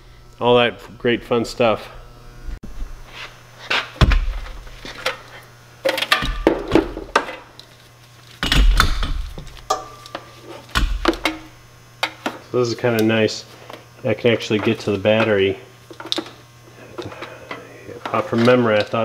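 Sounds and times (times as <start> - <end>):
low mains hum: 0.0 - 19.0
heavy thumps: 4.0 - 4.8.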